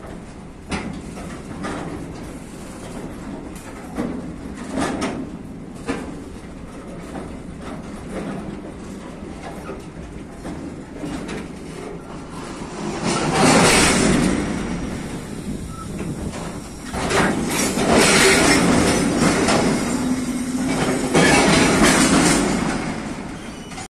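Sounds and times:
freight train rolling past: 0.0 - 23.9.

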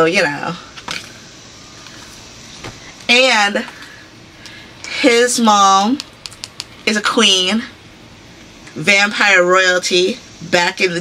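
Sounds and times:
faint hum and hiss: 0.0 - 11.0.

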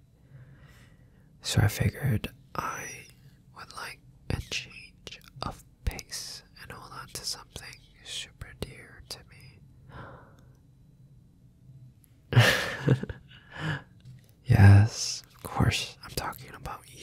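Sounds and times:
man whispering: 1.4 - 9.6, 14.4 - 17.0.

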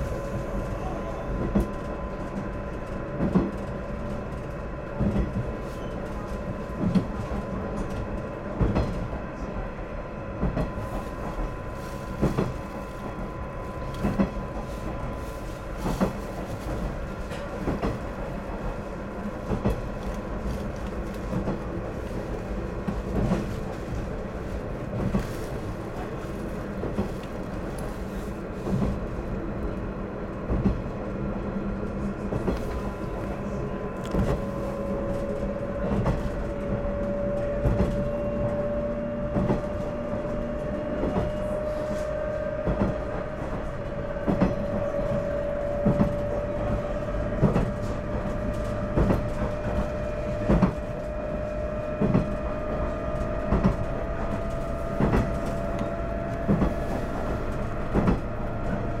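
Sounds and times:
train low rumble: 0.0 - 59.0.

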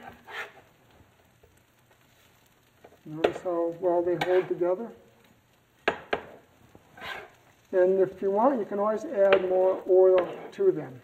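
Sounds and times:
sausage sizzling on griddle: 0.0 - 11.0.

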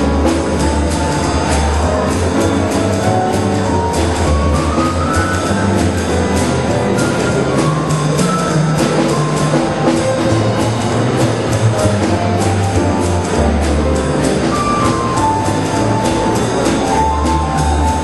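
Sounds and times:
bass: 0.0 - 18.0
piano: 0.0 - 18.0
steady cymbal beat: 0.0 - 18.0.

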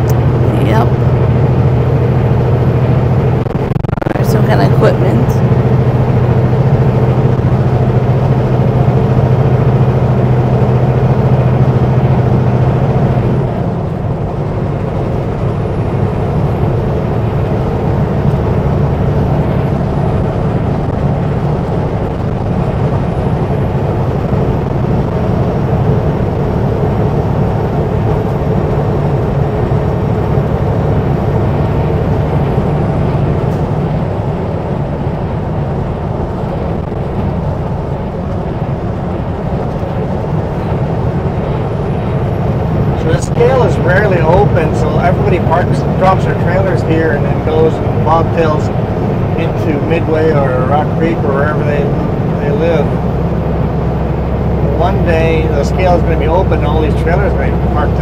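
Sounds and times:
road and wind noise: 0.0 - 58.0
truck diesel engine running: 0.0 - 58.0.

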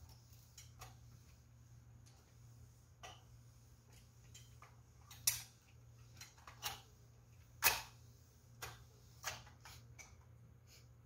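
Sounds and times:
iron on ironing board: 0.0 - 11.0
low steady hum: 0.0 - 11.0.

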